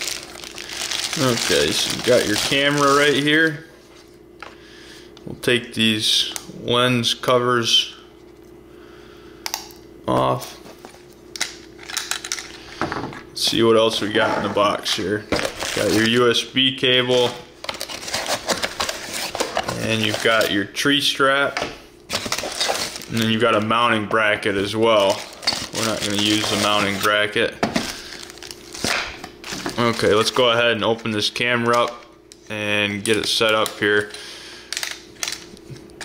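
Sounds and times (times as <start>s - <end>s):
cardboard and plastic crinkling: 0.0s - 3.6s, 14.7s - 16.3s, 17.1s - 20.7s, 22.1s - 23.9s, 24.6s - 31.1s.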